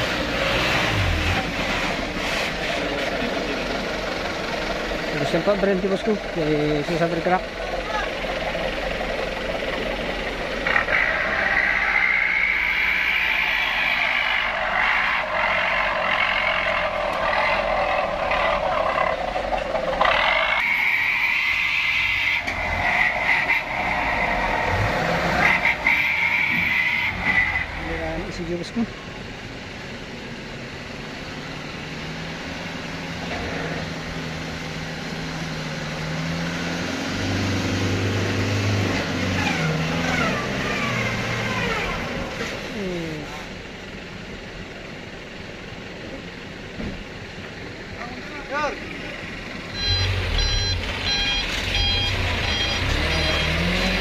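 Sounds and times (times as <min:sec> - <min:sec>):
truck engine under load: 0:00.0 - 0:54.0
people's voices: 0:05.0 - 0:10.7, 0:42.7 - 0:43.5.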